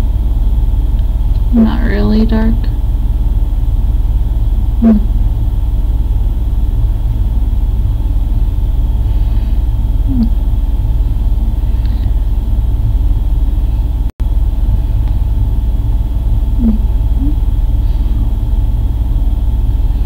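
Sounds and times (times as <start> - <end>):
loud low hum: 0.0 - 20.0.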